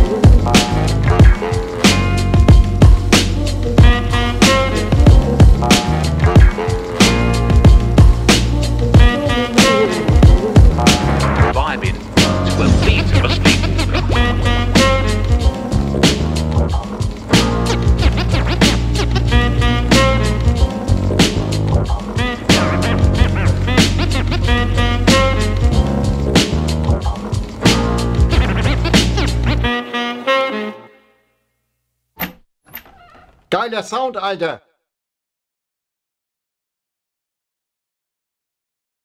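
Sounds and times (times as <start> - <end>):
hip hop beat with drums and bass: 0.0 - 29.8
turntable scratching: 9.6 - 14.5, 16.9 - 19.4, 27.0 - 29.6.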